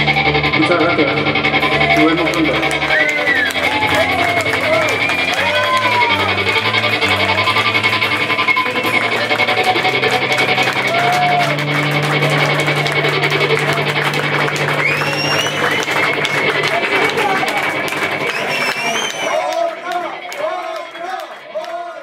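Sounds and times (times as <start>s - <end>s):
live rock band playing: 0.0s - 19.2s.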